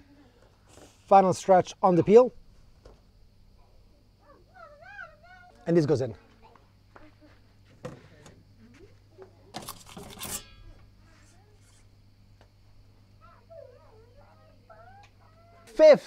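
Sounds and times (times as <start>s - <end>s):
pizza peel scraping on stone: 9.6s - 10.6s.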